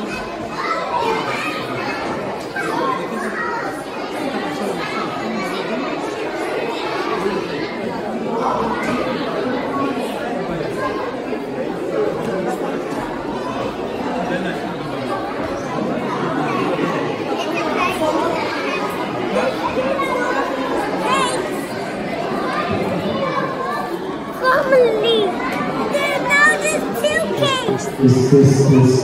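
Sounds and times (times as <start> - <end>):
crowd chatter in large hall: 0.0 - 29.0.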